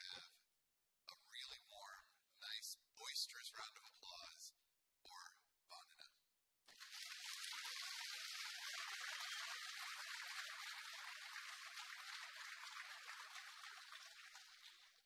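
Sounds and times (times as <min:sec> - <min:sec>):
audience applauding: 0:06.7 - 0:15.0.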